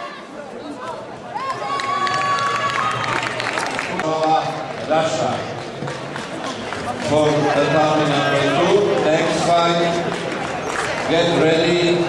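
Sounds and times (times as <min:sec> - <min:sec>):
arena crowd noise: 0:00.0 - 0:12.0
people clapping: 0:00.8 - 0:12.0.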